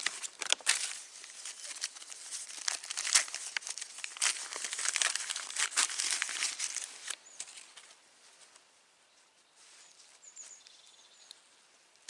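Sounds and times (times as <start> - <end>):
bandage wrapper crinkling: 0.0 - 8.0.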